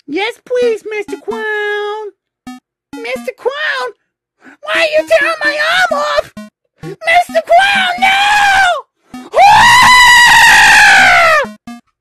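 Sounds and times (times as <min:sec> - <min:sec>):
cartoon child screaming: 0:07.0 - 0:11.5.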